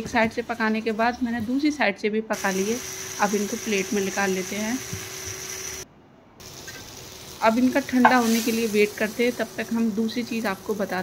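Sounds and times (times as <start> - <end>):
oil sizzling on a hot pan: 2.4 - 11.0.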